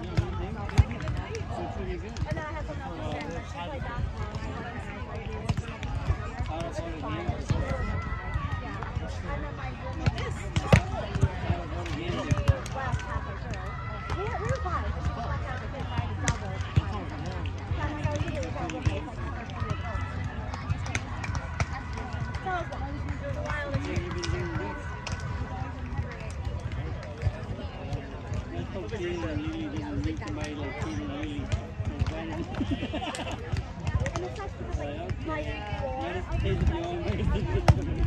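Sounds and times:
chatter of voices: 0.0 - 38.0.

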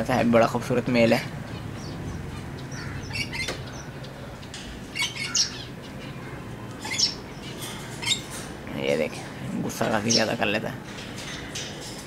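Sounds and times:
steady low hum: 0.0 - 12.0
parakeet squawking: 1.3 - 4.2, 4.9 - 8.4.

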